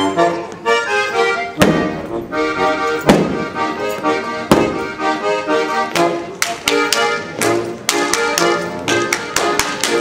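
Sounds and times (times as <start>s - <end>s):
folk dance music: 0.0s - 10.0s
dancer slapping thighs and shoes: 2.8s - 5.0s, 5.8s - 10.0s.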